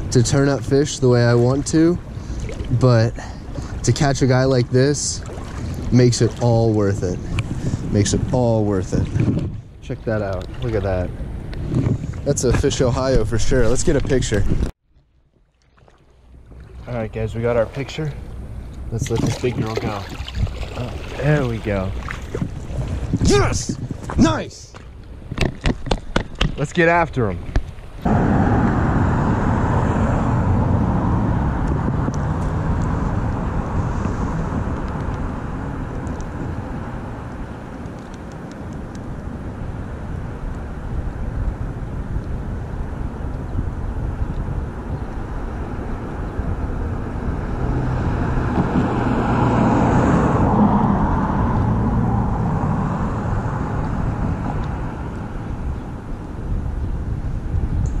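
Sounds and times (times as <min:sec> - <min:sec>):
road traffic passing on a bridge: 0:00.0 - 0:08.0, 0:10.4 - 0:12.6, 0:18.0 - 0:19.0, 0:20.2 - 0:58.0.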